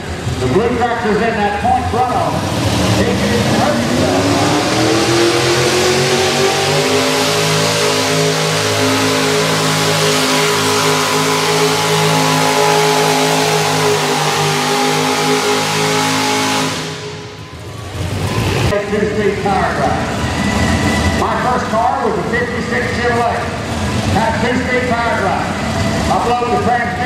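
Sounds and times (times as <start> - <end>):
tractor engine at full throttle: 0.0 - 27.0.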